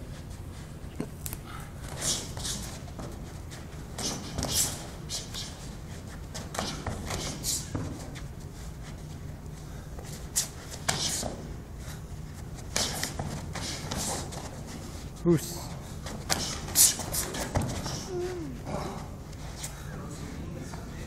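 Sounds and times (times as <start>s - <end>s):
bare feet shuffling on mats: 0.0s - 21.0s.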